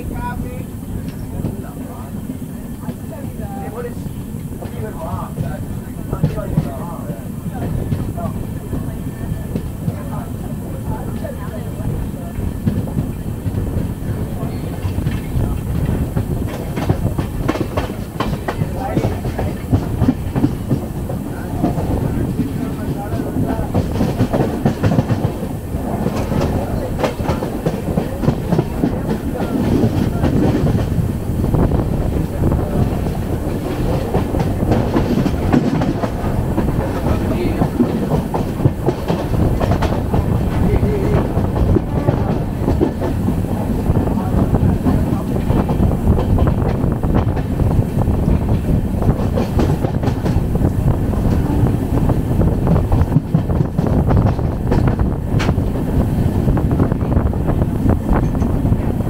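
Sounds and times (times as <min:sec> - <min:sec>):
train wheels rumbling on rail: 0:00.0 - 0:59.0
wheels clacking over rail joints: 0:11.0 - 0:59.0.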